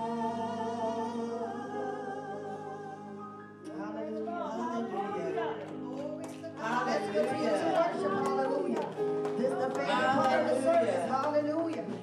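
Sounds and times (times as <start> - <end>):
worship singers over microphones: 0.0 - 12.0.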